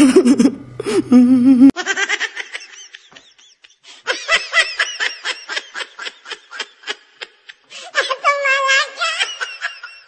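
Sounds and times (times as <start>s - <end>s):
high-pitched giggling: 0.0s - 2.4s.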